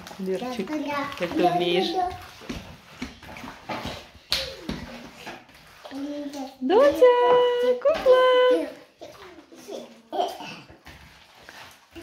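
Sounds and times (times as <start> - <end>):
wet squelching of kneaded chicken: 10.8 - 12.0.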